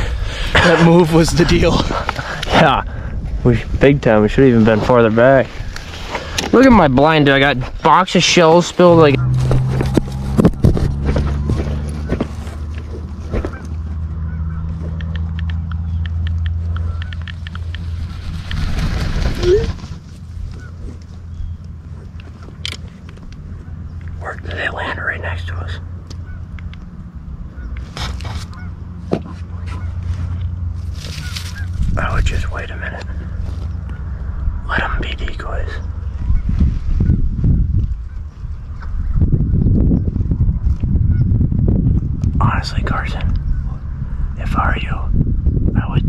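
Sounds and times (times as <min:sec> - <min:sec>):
steady low rumble: 0:00.0 - 0:46.0
geese honking: 0:13.3 - 0:14.8, 0:16.6 - 0:17.8, 0:26.2 - 0:26.6, 0:27.5 - 0:31.8.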